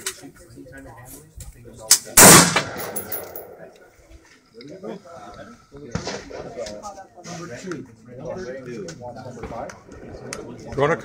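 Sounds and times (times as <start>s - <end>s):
people talking: 0.0s - 11.0s
gunshot crack: 2.2s - 3.2s.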